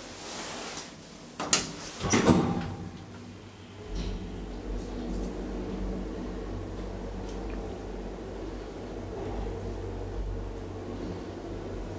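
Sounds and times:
elevator door latch clacks: 1.4 - 3.1
low hum: 2.6 - 11.9.

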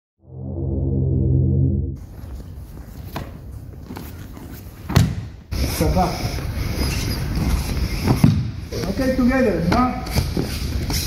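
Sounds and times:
bare feet stepping on gym mats: 2.1 - 5.4.

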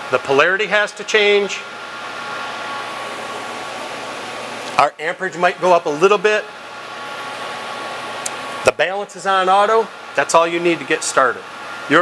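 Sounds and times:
faint steady whine: 0.0 - 12.0
rushing fan noise: 0.0 - 12.0.

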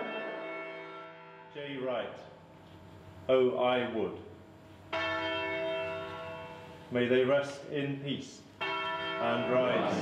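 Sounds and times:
church bell ringing: 0.0 - 2.5, 4.9 - 8.0, 8.6 - 10.0.

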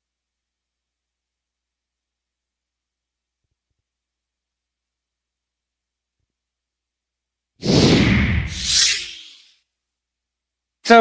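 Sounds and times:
whooshing transition effect: 7.6 - 9.5.

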